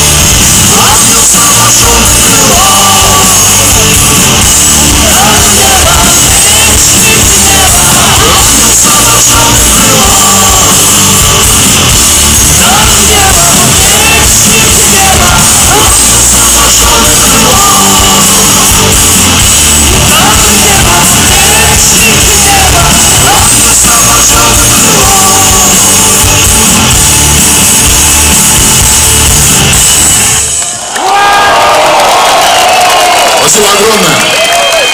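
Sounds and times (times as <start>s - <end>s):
electric guitar: 0.0s - 30.8s
drums: 0.0s - 34.9s
man singing: 0.4s - 26.5s
crowd shouting: 0.6s - 26.2s, 30.4s - 34.9s.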